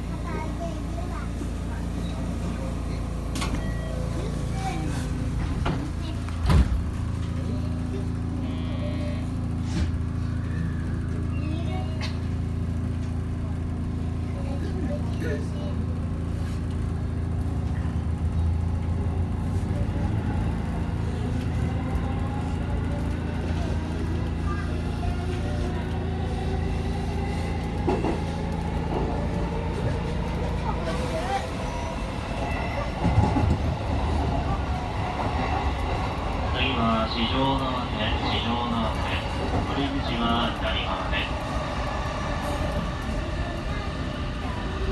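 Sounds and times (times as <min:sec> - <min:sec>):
electric train hum: 0:00.0 - 0:44.9.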